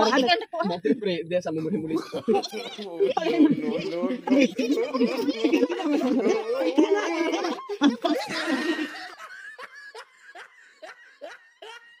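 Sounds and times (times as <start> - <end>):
person laughing hard: 2.0 - 12.0.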